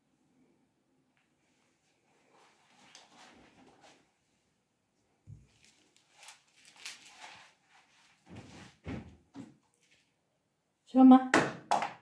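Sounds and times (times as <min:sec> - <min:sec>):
soft knocks and bumps: 0:08.3 - 0:09.6.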